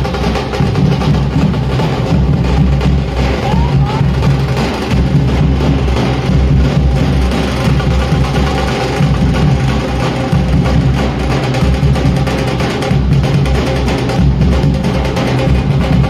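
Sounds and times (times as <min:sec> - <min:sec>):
drum-led music: 0:00.0 - 0:16.0.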